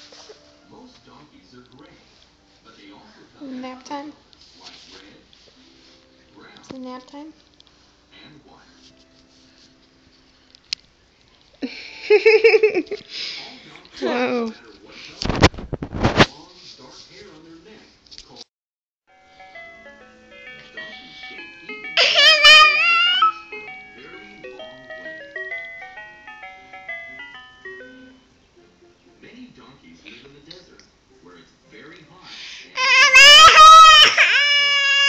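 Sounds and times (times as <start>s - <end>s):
toddler crying: 22.0s - 23.5s, 32.8s - 35.0s.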